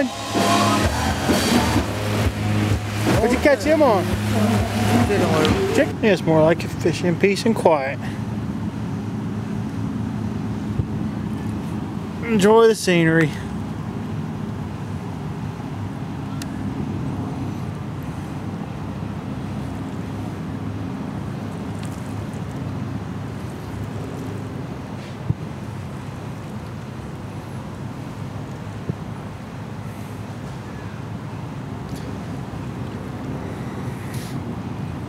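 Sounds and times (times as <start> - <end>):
low rumble and hiss: 0.0 - 35.0.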